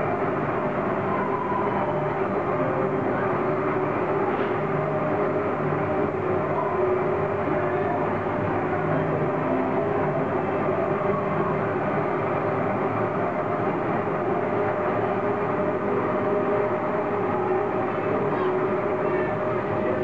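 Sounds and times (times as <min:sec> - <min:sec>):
faint constant hum: 0:00.0 - 0:20.0
ride train running on track: 0:00.0 - 0:20.0.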